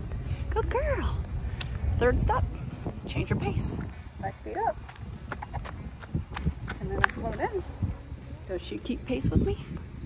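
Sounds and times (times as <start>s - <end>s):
flip-flop footsteps on asphalt: 1.1s - 10.0s.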